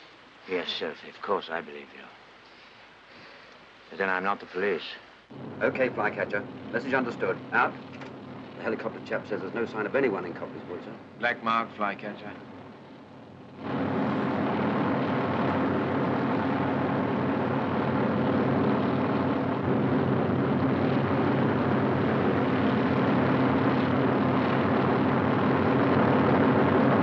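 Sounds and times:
helicopter engine and rotor: 5.3 - 11.1, 11.8 - 27.0.

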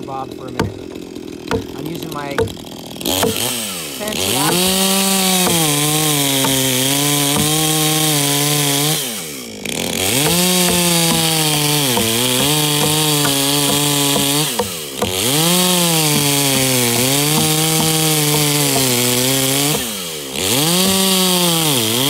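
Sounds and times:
chainsaw cutting log: 0.0 - 22.0.

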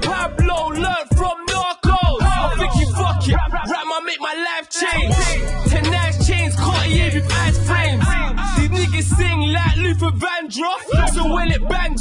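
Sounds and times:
hip hop beat with bass kicks: 0.0 - 12.0
man rapping: 0.0 - 12.0.

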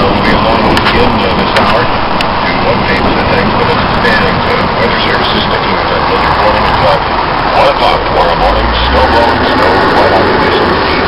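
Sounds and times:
indistinct voices: 0.0 - 11.0
loud steady rushing noise: 0.0 - 11.0.

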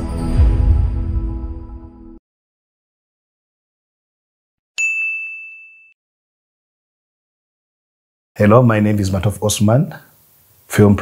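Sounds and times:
high bell-like ding: 4.8 - 6.0.

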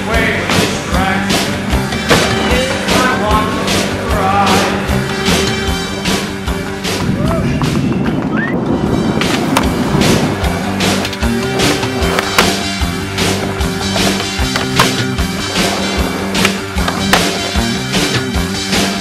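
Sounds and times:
background music: 0.0 - 19.0
skateboard wheels rolling on pavement: 6.7 - 18.5
skateboard clacks: 11.0 - 12.7, 13.4 - 17.7.

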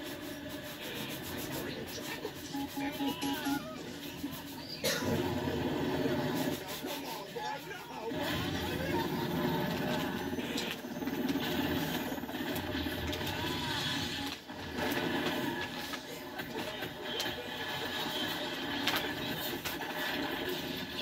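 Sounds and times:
helicopter rotor and engine: 8.1 - 15.2.

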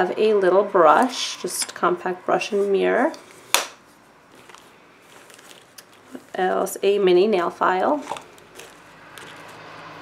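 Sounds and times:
soft rustling and light clicks: 4.3 - 6.7.

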